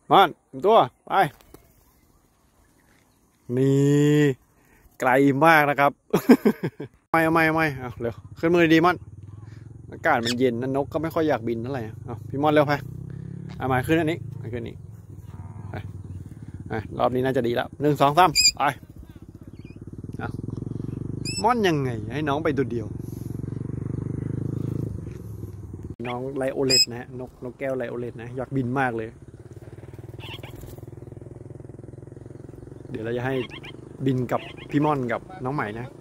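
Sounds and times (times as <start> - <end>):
small motorcycle engine idling: 6.2 - 36.0
person speaking: 26.0 - 27.6.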